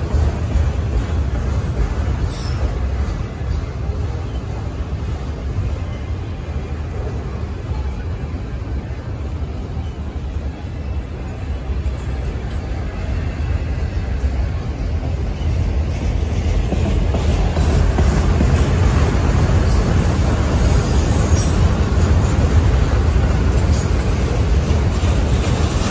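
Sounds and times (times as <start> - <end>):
train wheels rumbling on rails: 0.0 - 25.9.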